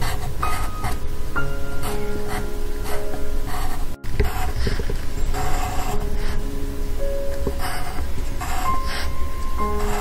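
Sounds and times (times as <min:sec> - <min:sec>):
pencil scratching on paper: 0:00.0 - 0:01.0, 0:01.7 - 0:06.5, 0:07.5 - 0:10.0
background music with held notes: 0:00.0 - 0:10.0.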